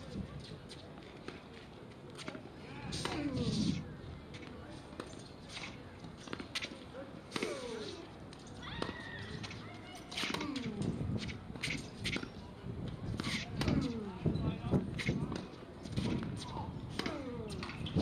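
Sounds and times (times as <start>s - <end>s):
tennis balls hit and bouncing: 0.4s - 18.0s
people talking: 2.2s - 11.3s, 12.1s - 17.8s.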